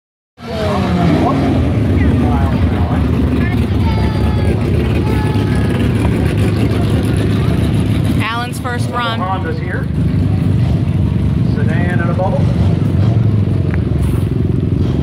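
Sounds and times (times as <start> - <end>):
racing car engines revving: 0.4 - 15.0.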